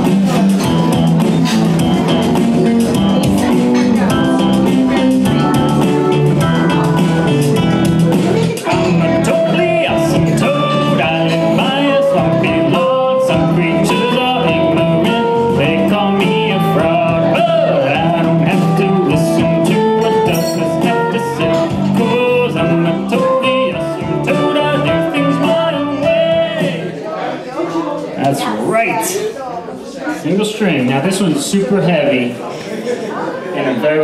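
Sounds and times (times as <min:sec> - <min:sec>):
electric guitar melody: 0:00.0 - 0:26.9
backing track: 0:00.0 - 0:27.0.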